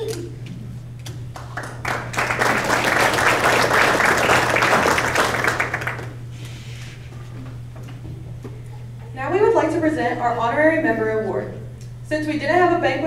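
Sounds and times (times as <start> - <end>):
audience applause: 1.4 - 6.3.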